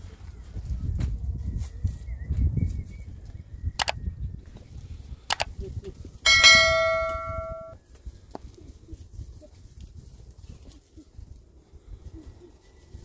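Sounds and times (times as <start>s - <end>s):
bell-like metallic ring: 6.3s - 7.8s
sharp click: 6.4s - 7.8s.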